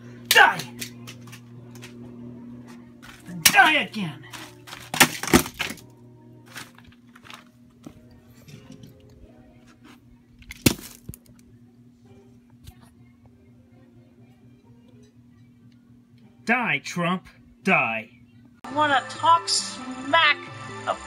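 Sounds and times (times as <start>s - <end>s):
faint background music: 0.0s - 21.0s
plastic toy cracking: 4.4s - 5.8s, 10.4s - 11.5s.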